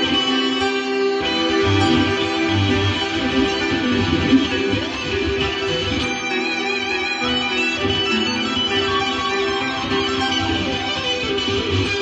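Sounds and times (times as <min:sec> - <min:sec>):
electric guitar lead: 0:00.0 - 0:12.0
recorded backing track: 0:00.0 - 0:12.0.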